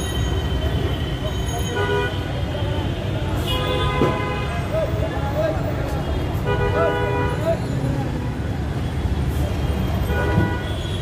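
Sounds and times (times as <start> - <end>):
rumble of traffic engines: 0.0 - 11.0
vehicle horns: 0.5 - 4.9, 6.0 - 7.7, 8.8 - 11.0.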